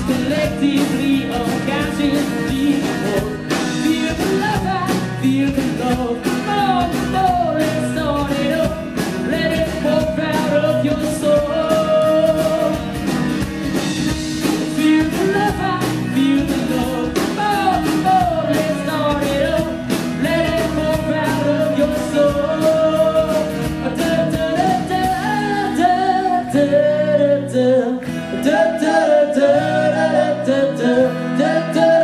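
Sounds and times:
drum kit: 0:00.0 - 0:27.2
electric bass: 0:00.0 - 0:32.0
strummed acoustic guitar: 0:00.0 - 0:32.0.

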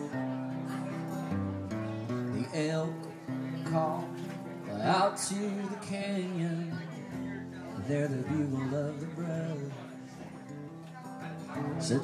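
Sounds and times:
acoustic guitar strumming: 0:00.0 - 0:12.0
man singing: 0:02.1 - 0:10.4, 0:11.5 - 0:12.0.

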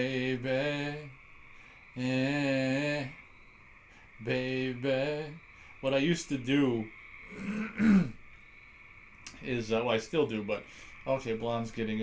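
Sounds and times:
man clearing his throat: 0:07.4 - 0:08.2.

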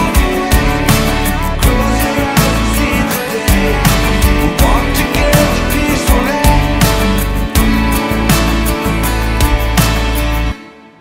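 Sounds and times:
person singing lead vocal: 0:00.0 - 0:08.2
drum beat: 0:00.0 - 0:10.3
bass: 0:00.0 - 0:10.6
strummed acoustic guitar: 0:00.0 - 0:11.0.

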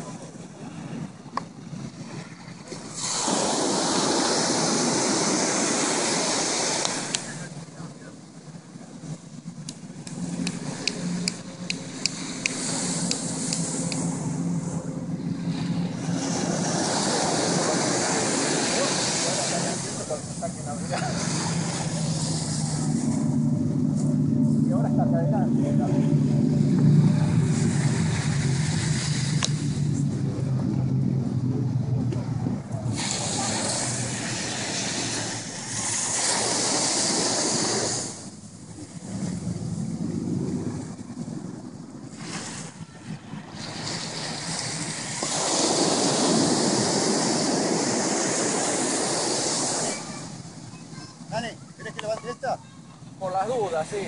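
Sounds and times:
surf washing on beach: 0:00.0 - 0:54.0
wind buffeting microphone: 0:00.0 - 0:54.0.

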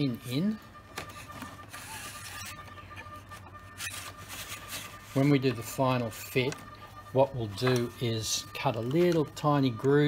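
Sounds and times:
handling noise: 0:00.0 - 0:10.0
rubbing: 0:00.9 - 0:09.4.

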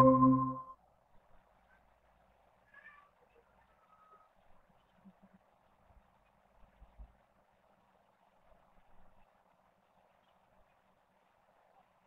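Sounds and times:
electronic notification chime: 0:00.0 - 0:00.6.

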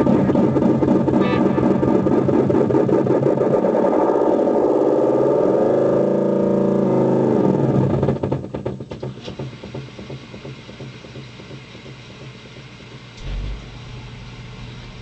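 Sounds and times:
guitar delay pedal self-oscillating: 0:00.0 - 0:05.3, 0:13.2 - 0:15.0.

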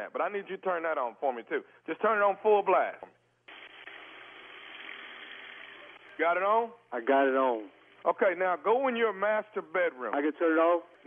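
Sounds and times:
tap water running: 0:03.5 - 0:06.2.

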